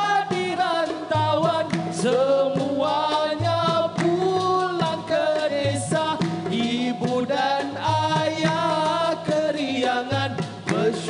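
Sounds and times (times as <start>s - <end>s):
man singing into a microphone: 0.0s - 11.0s.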